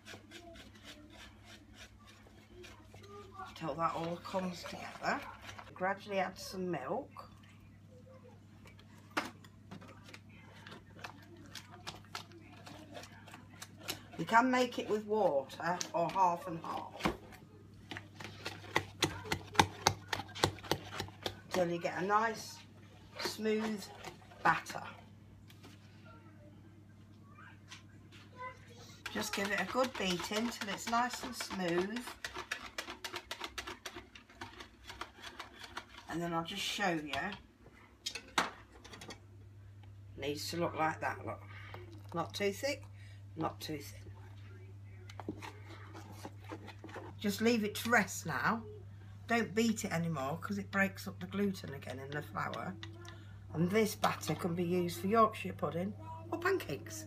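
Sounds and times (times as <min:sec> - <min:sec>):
whisk tapping plastic jug: 0:17.9 - 0:21.8, 0:29.0 - 0:36.1.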